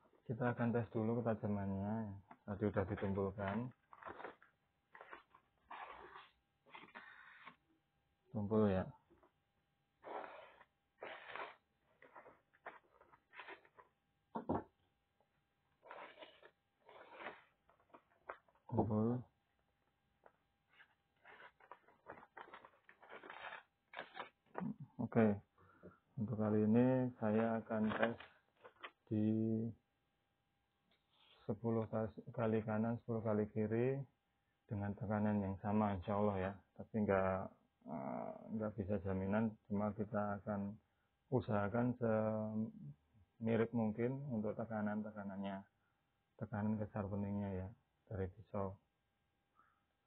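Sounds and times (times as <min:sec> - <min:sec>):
man speaking: 0:00.3 - 0:03.7, 0:18.7 - 0:19.3, 0:24.6 - 0:25.4
paper rustling: 0:02.9 - 0:07.6, 0:10.2 - 0:14.0, 0:15.8 - 0:18.7, 0:20.2 - 0:24.8, 0:27.3 - 0:29.0.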